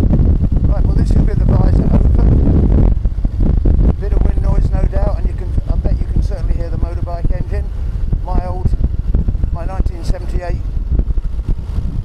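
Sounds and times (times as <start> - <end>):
wind rumble: 0.0 - 12.0
muffled person talking: 0.7 - 2.6, 3.9 - 8.8, 9.5 - 10.6
motorcycle engine: 1.3 - 9.6, 10.5 - 12.0.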